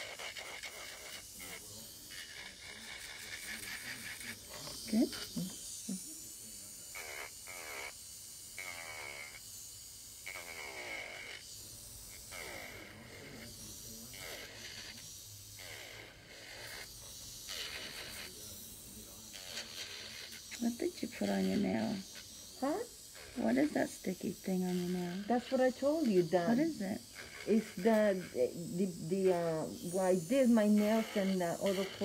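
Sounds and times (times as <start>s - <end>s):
nail file rasping on fingernails: 0.0s - 6.0s, 6.9s - 8.0s, 10.2s - 11.5s, 12.1s - 32.0s.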